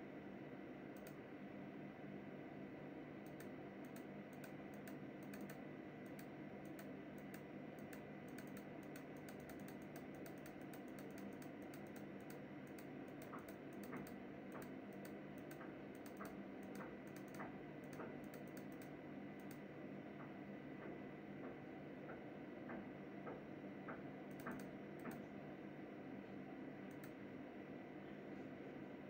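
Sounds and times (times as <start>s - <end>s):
steady low hum: 0.0s - 29.0s
irregular clicking: 1.0s - 1.2s, 3.2s - 25.3s, 26.9s - 27.2s.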